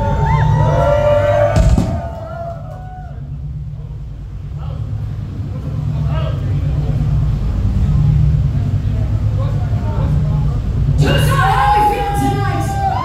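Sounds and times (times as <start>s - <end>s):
loud low rumble: 0.0s - 13.0s
crowd murmuring: 1.6s - 13.0s.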